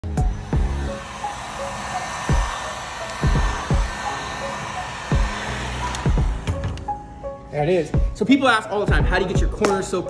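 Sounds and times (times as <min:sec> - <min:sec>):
heat gun blowing air: 0:00.0 - 0:07.1
music with drum beat: 0:03.2 - 0:04.0, 0:08.9 - 0:09.8.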